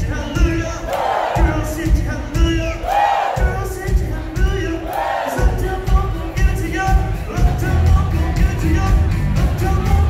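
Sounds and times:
crowd yelling and cheering: 0.1 - 10.0
live country band: 5.4 - 10.0.

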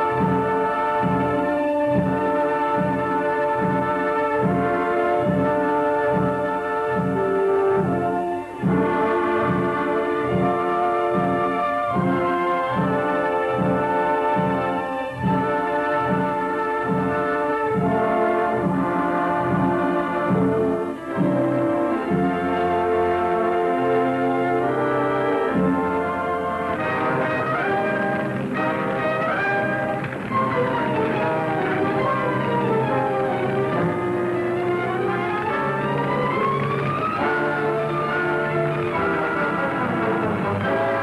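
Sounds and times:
orchestral music led by brass: 0.0 - 41.0.

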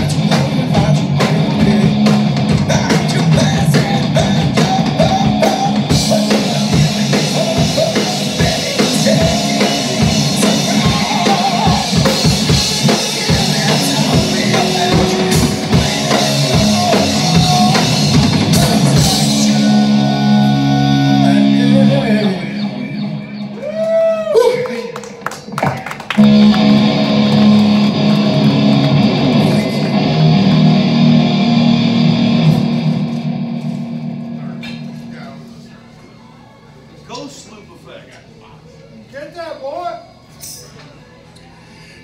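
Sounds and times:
electric guitar chords ringing: 0.0 - 23.6, 26.2 - 35.9
drum hits: 0.2 - 19.6
bending guitar notes: 4.0 - 23.6, 26.2 - 36.4.

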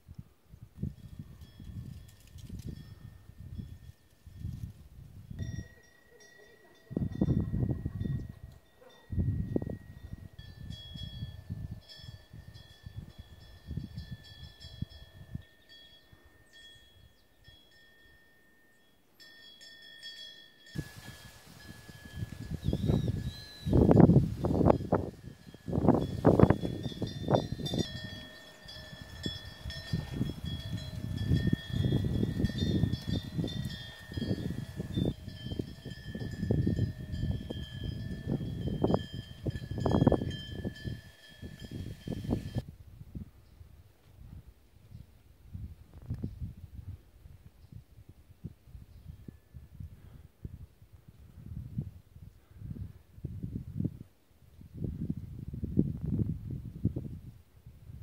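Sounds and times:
wind gusting on microphone: 0.1 - 5.7, 6.9 - 15.5, 20.8 - 58.0
wind bells ringing: 0.9 - 4.7, 5.3 - 42.7.

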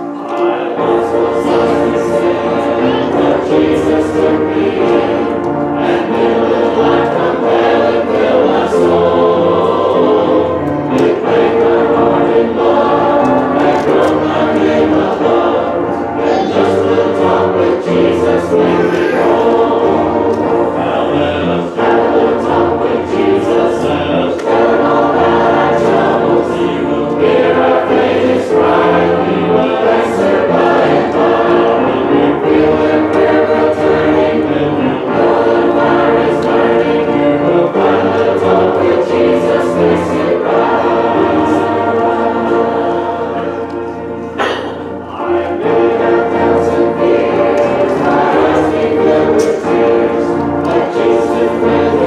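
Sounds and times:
congregation singing a hymn: 0.0 - 52.0.

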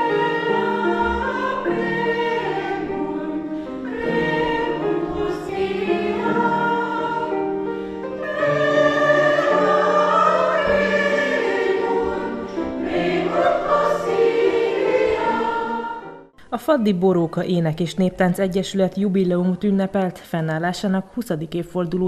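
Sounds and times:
women's choir singing: 0.0 - 16.3.

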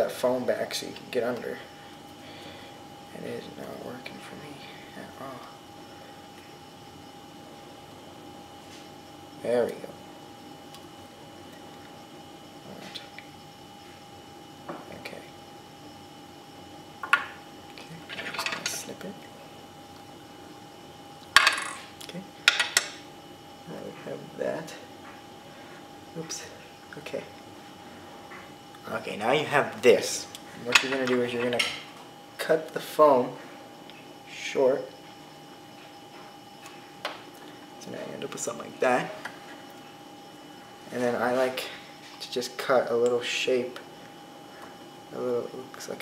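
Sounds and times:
faint steady hum: 0.0 - 46.0
man speaking: 3.1 - 5.6, 26.1 - 27.4, 28.8 - 31.8, 37.8 - 39.2, 40.9 - 43.8, 45.1 - 46.0.

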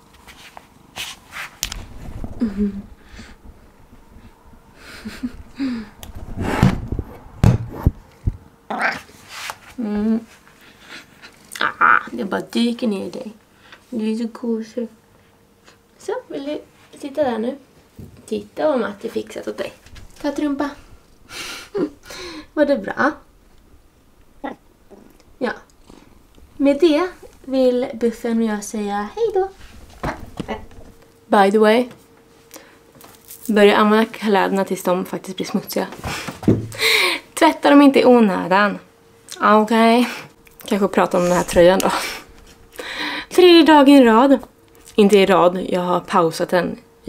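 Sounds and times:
low murmured hums: 0.0 - 47.0
soft bumps: 1.8 - 8.4.

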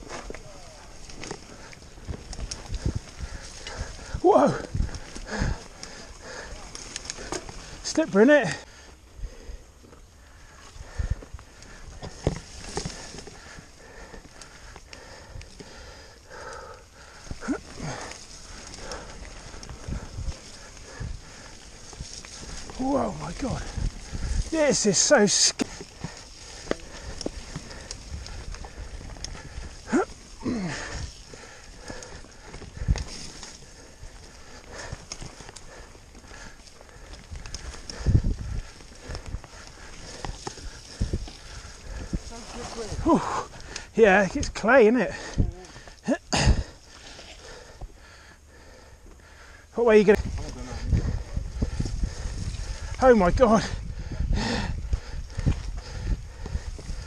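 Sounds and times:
wind rumble on microphone: 0.0 - 7.8, 17.2 - 24.6, 25.6 - 44.6, 50.1 - 57.0
bike clattering over rough trail: 0.0 - 57.0.

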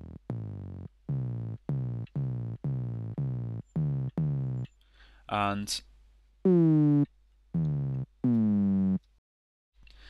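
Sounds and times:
synth notes with pitch drop: 0.0 - 4.7.

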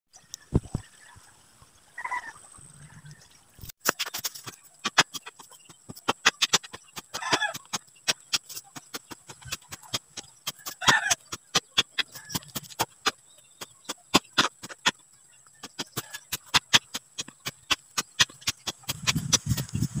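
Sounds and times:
digging tool chopping soil: 3.8 - 15.0, 15.6 - 20.0.

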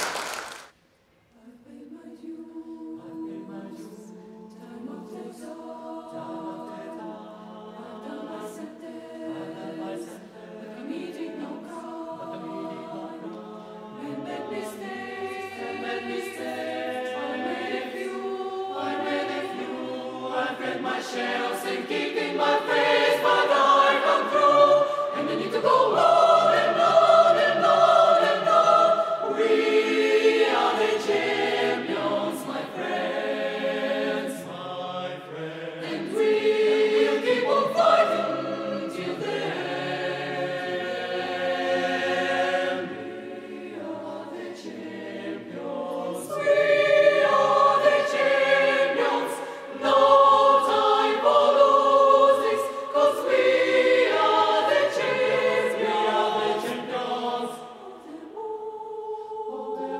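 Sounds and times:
mixed choir singing: 1.3 - 59.9.

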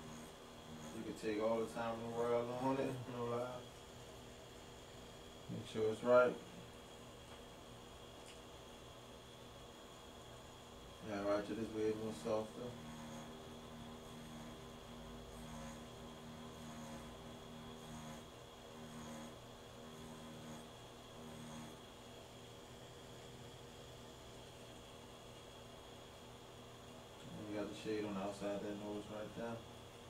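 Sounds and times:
tattoo machine buzzing: 0.0 - 3.6, 11.0 - 22.0.

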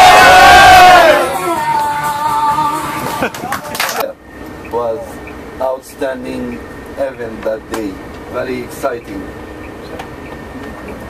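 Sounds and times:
crowd cheering: 0.0 - 4.0.

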